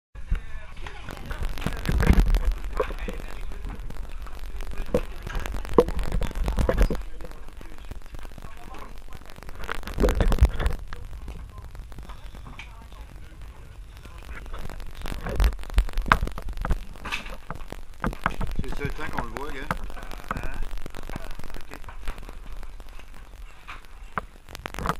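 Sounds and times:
indistinct voices: 0:00.2 - 0:24.9
low rumble: 0:01.1 - 0:24.8.

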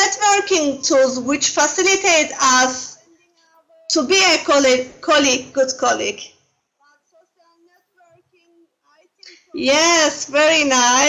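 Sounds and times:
faint high-pitched voice singing: 0:06.8 - 0:09.5.

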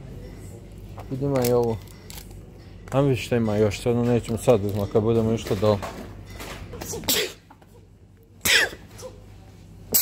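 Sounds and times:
person sneezing: 0:06.8 - 0:07.4, 0:08.4 - 0:09.2.

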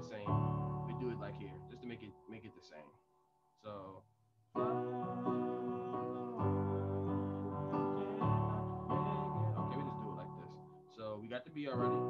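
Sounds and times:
digital keyboard chord: 0:00.0 - 0:02.4, 0:04.6 - 0:10.8, 0:11.7 - 0:12.0.

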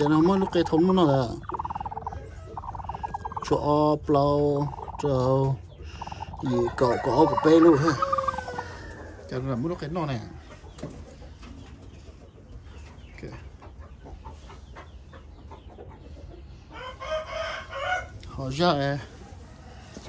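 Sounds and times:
hen clucking and squawking: 0:00.0 - 0:18.2.

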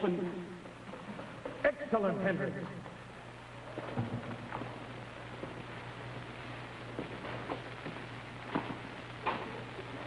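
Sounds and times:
television soundtrack hum and hiss: 0:00.0 - 0:10.0.

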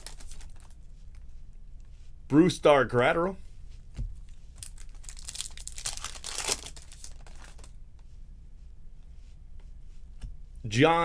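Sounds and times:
foil wrapper tearing and crinkling: 0:00.0 - 0:00.8, 0:04.6 - 0:07.7.

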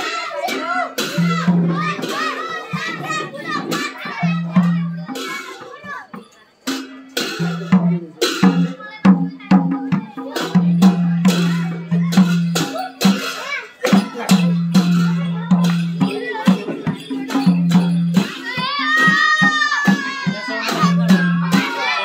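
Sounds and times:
people singing: 0:00.0 - 0:05.6, 0:13.8 - 0:22.0
children's voices: 0:00.0 - 0:22.0
hand drums beating: 0:00.0 - 0:22.0.

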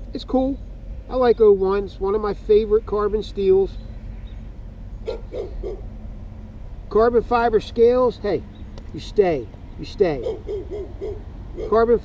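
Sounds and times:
low background rumble: 0:00.0 - 0:12.0.

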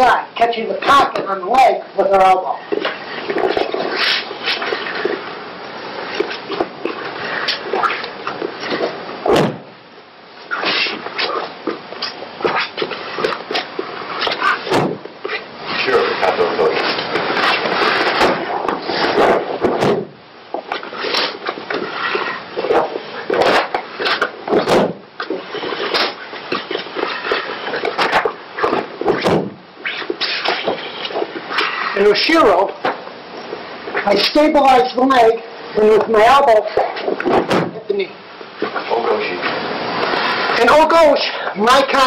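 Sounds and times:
man talking: 0:00.0 - 0:02.7, 0:15.8 - 0:16.9, 0:31.9 - 0:32.8, 0:34.0 - 0:37.0, 0:37.7 - 0:38.2, 0:38.8 - 0:39.6, 0:40.6 - 0:42.0
short knocks and thumps: 0:08.8 - 0:09.7, 0:12.4 - 0:15.1, 0:17.1 - 0:20.8, 0:22.6 - 0:27.0, 0:27.8 - 0:29.6, 0:37.0 - 0:37.9.

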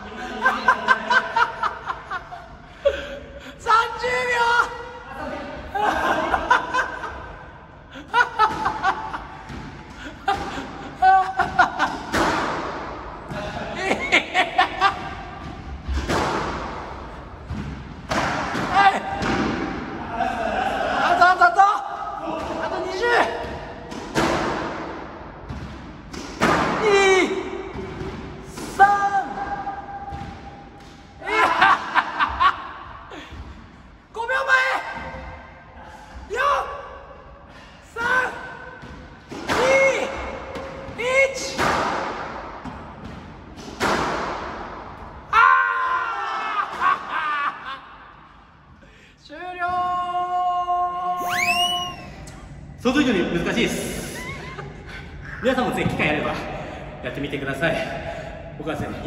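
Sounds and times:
squash ball hitting court wall: 0:08.3 - 0:13.8, 0:14.8 - 0:20.0, 0:22.2 - 0:32.0, 0:38.7 - 0:45.3
short falling squeal: 0:51.2 - 0:52.2
person laughing: 0:54.0 - 0:55.4.

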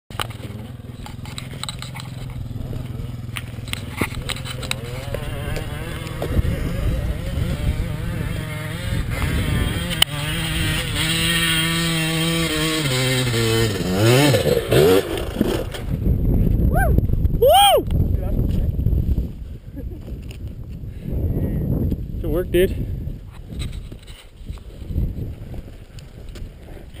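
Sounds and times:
motocross bike engine revving: 0:00.1 - 0:16.0.

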